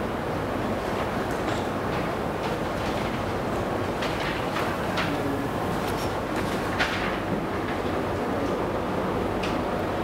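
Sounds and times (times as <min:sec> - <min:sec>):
room noise rumble: 0:00.0 - 0:10.0.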